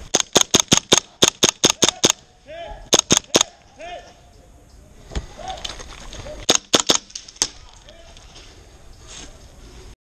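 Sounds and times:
airsoft rifle shots cracking: 0.0 - 2.2, 2.9 - 3.6, 6.4 - 7.6.

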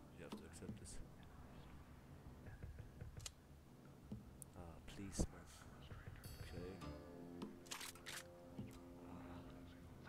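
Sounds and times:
held musical chord: 6.4 - 7.4.

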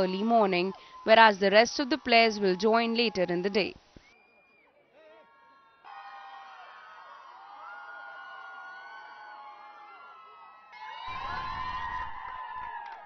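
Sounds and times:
crowd cheering and shouting: 4.9 - 13.0.

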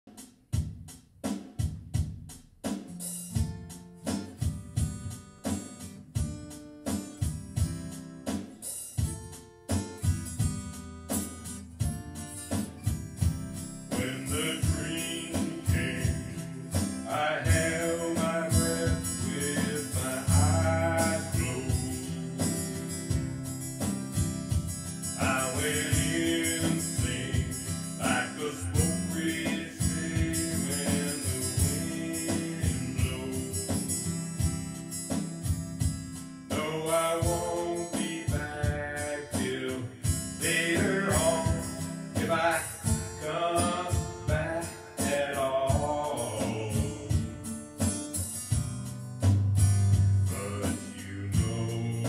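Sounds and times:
acoustic guitar strumming: 1.9 - 52.0
man singing: 13.9 - 23.5, 25.0 - 34.0, 36.5 - 47.6, 50.2 - 52.0.

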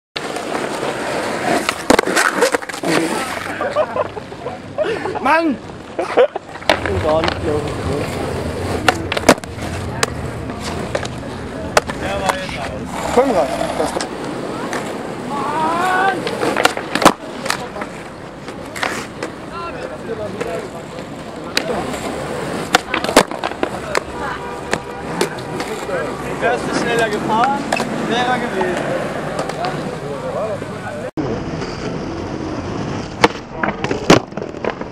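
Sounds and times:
skateboard wooden clacks: 0.2 - 4.2, 6.5 - 15.0, 16.1 - 19.4, 20.3 - 25.9, 33.0 - 34.9
skateboard wheels rolling on asphalt: 0.2 - 34.9.

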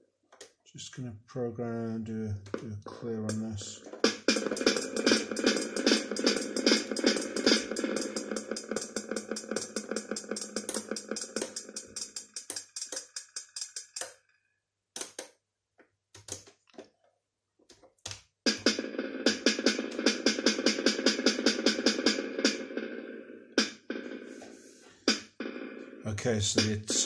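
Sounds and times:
drum machine hits with reverb: 3.3 - 13.8, 18.5 - 24.4, 25.1 - 27.0.

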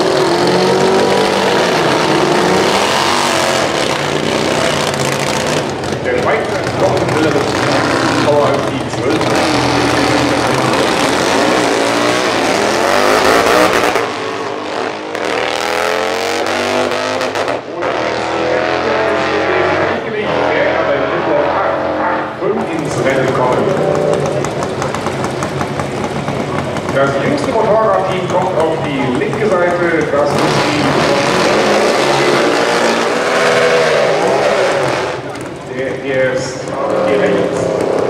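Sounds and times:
motorcycles accelerating hard: 0.0 - 38.0
motorcycle engines idling: 3.9 - 12.3, 22.4 - 31.0, 34.8 - 38.0.

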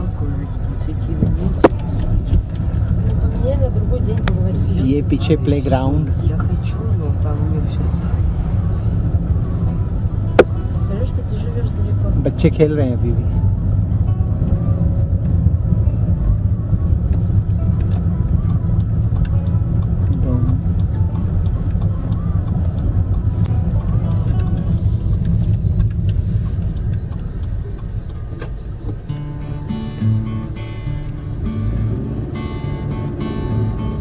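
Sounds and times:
car engine and tyres rumbling: 0.0 - 34.0.

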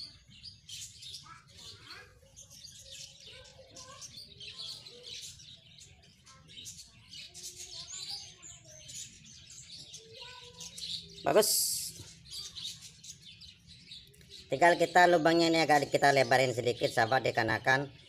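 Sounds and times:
small birds chirping: 0.0 - 18.0.

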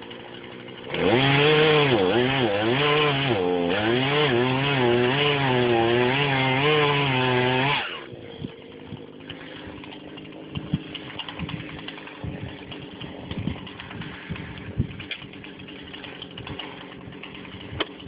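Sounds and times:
chainsaw cutting wood: 0.0 - 18.0
engine hum: 0.0 - 18.0
ticks and cracks: 8.1 - 18.0.

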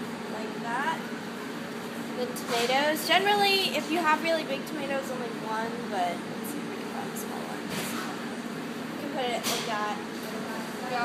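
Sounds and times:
kitchen equipment humming: 0.0 - 11.0.

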